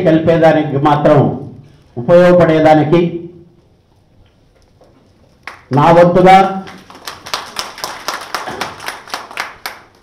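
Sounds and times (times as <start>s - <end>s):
small audience clapping: 5.0s - 10.0s.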